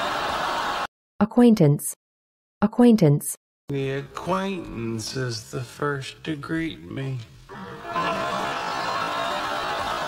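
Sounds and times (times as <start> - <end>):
studio audience laughing: 0.0 - 0.9, 7.5 - 10.0.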